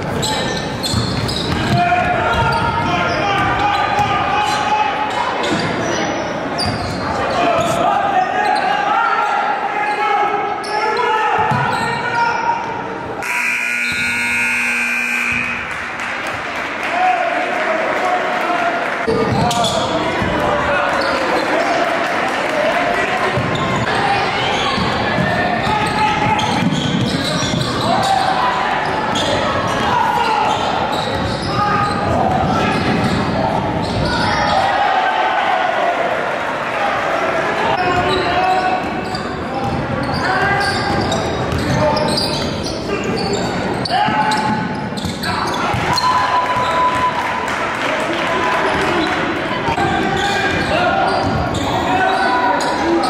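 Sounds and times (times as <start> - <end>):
chatter and calls of people: 0.0 - 53.0
steady buzzer tone: 13.2 - 15.6.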